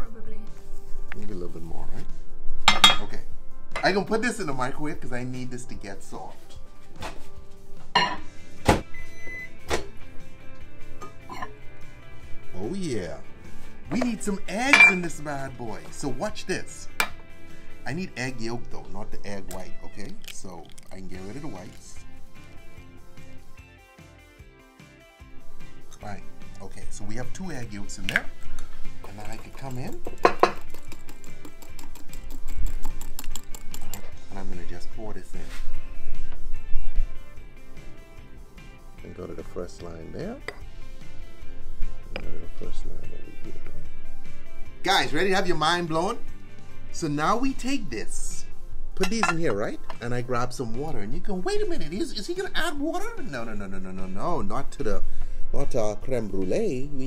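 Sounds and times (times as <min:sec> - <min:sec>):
background music: 0:00.0 - 0:57.0
glass cup set down: 0:08.0 - 0:08.3, 0:11.0 - 0:11.6, 0:14.7 - 0:15.0, 0:30.2 - 0:30.6, 0:49.0 - 0:49.5
fork clicking against glass cup: 0:30.2 - 0:34.0.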